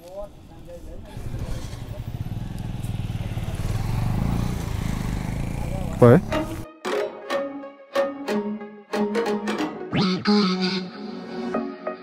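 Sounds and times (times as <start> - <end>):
motorcycle engine running: 0.3 - 6.6.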